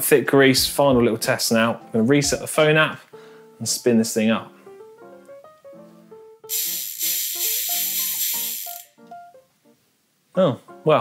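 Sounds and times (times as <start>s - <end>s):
bicycle freehub buzzing: 6.5s - 9.0s.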